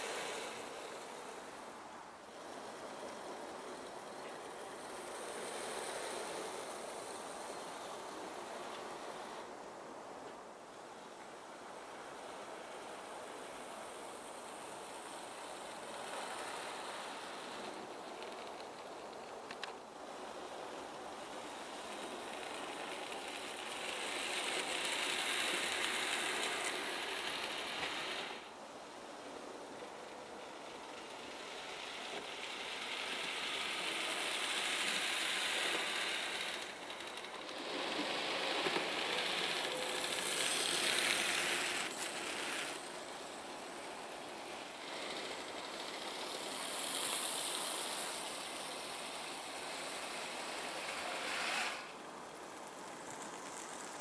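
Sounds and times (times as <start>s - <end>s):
model train wheels rattling: 0.0s - 54.0s.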